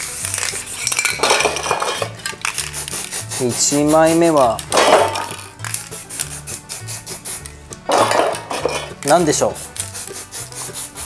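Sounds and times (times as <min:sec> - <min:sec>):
background music with steady beat: 0:00.0 - 0:11.0
spray-paint cans clinking: 0:00.0 - 0:11.0.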